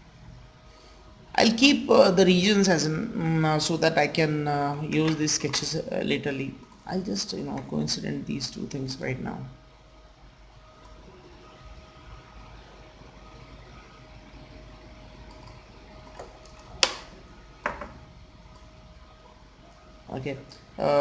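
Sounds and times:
faint electrical hum: 0:00.0 - 0:21.0.

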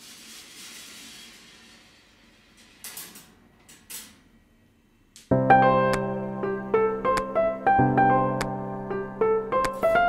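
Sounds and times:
marbles rolling on metal tracks: 0:00.0 - 0:03.4.

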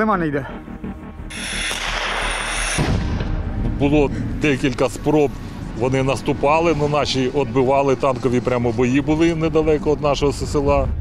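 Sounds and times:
faint background music: 0:00.0 - 0:01.4, 0:02.8 - 0:11.0.

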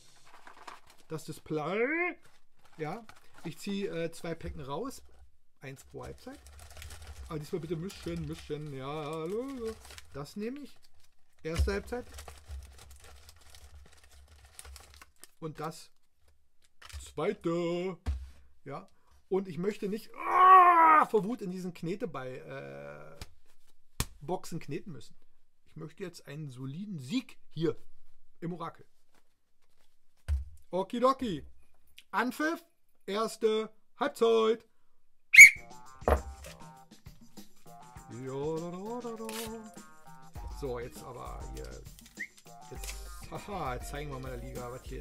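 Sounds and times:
sticker packets crinkling: 0:00.0 - 0:04.4, 0:05.7 - 0:17.2, 0:38.9 - 0:39.8, 0:40.8 - 0:43.6
thump: 0:18.0 - 0:18.4, 0:30.3 - 0:30.6
short sharp whistle blast: 0:35.4 - 0:35.8
quiet background music: 0:35.5 - 0:45.0.

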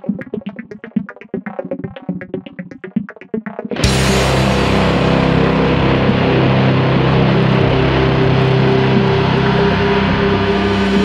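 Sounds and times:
distorted electric guitar drone: 0:03.7 - 0:11.0.

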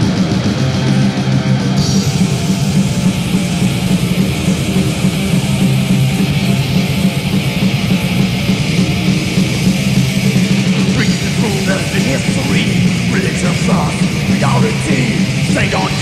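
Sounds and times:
dense drum beat: 0:00.0 - 0:16.0
distorted electric guitars riffing: 0:00.0 - 0:16.0.

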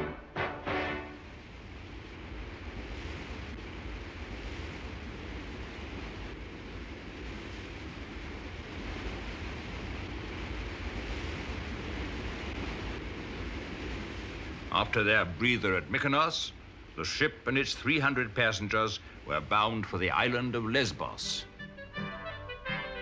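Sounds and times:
rushing wash of water: 0:00.0 - 0:21.7
ship engine rumble: 0:00.0 - 0:23.0.

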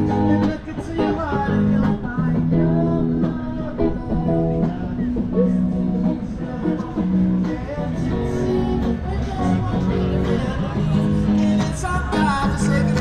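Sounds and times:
electric guitar playing: 0:00.0 - 0:13.0.

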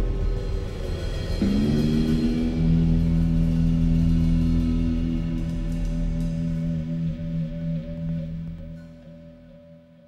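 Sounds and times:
low drum wash: 0:00.0 - 0:08.2.

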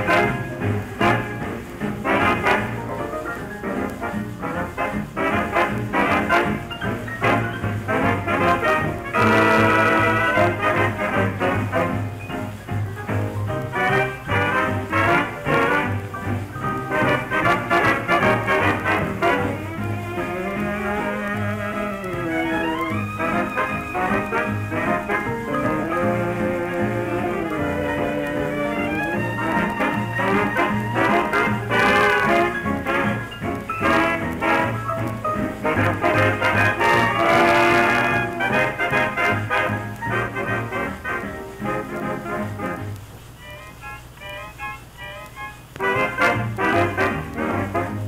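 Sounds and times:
dance orchestra playing: 0:00.0 - 0:48.0.

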